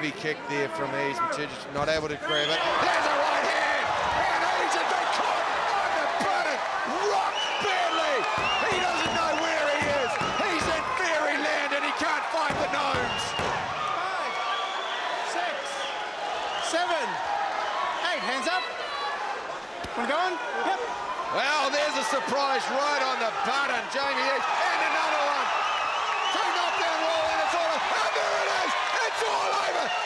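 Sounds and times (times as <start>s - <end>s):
crowd shouting and cheering: 0.0s - 30.0s.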